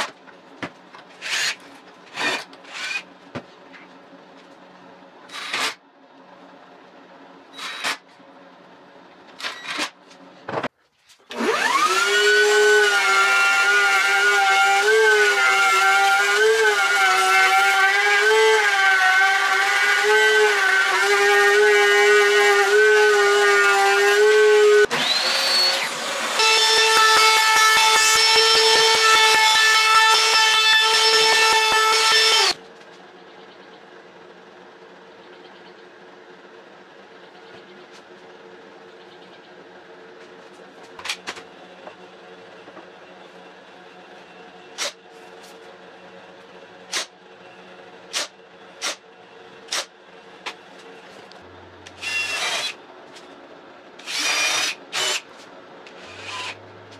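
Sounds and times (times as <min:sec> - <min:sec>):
table saw motor running: 0:11.3 - 0:32.6, 0:51.5 - 0:52.8, 0:54.0 - 0:55.2, 0:55.9 - 0:56.9
trim router whining: 0:11.3 - 0:32.6, 0:51.4 - 0:52.8, 0:54.0 - 0:55.3, 0:55.9 - 0:56.9.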